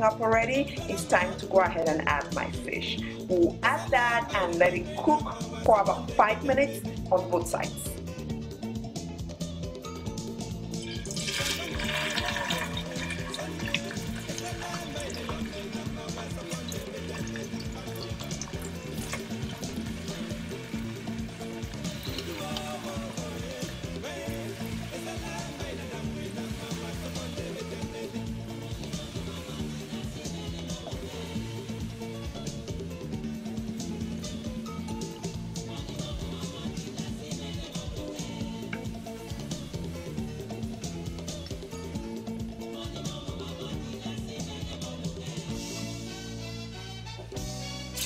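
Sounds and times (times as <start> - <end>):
background music: 0.0 - 48.0
fish sizzling in hot oil: 10.4 - 44.4, 47.4 - 48.0.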